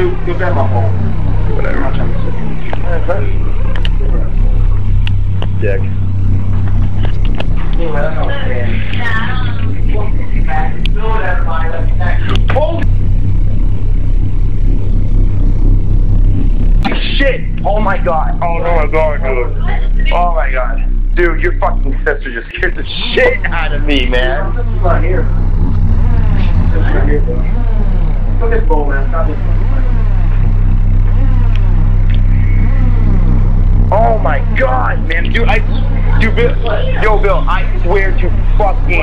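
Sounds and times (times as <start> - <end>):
deep hum: 0.0 - 39.0
faint sweeping tones: 0.0 - 39.0.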